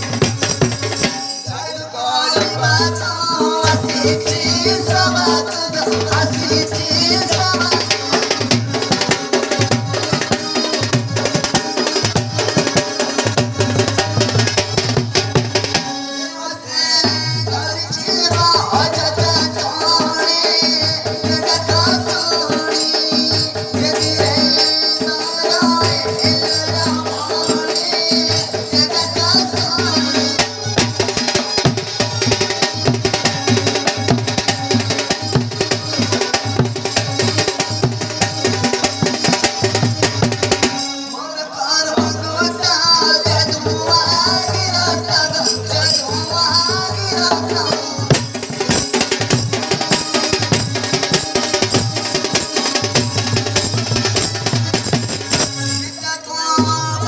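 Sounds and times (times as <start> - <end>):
fast folk drumming: 0.0 - 16.2, 16.8 - 41.1, 41.8 - 57.0.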